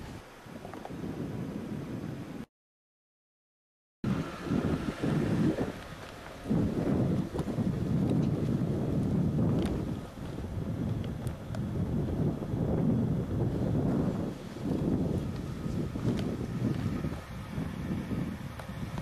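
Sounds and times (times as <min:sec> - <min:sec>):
wind buffeting microphone: 0:00.0 - 0:02.5, 0:04.0 - 0:19.0.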